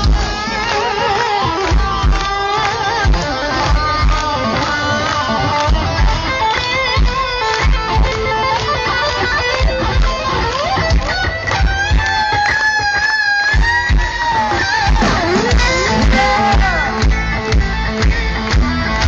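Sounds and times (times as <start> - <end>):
electric guitar lead: 0.0 - 19.0.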